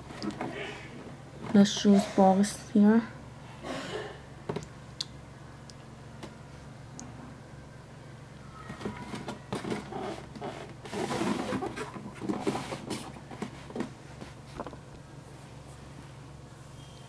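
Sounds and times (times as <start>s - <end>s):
steady low hum: 0.0s - 17.0s
cardboard box rustling and scraping: 9.0s - 14.8s.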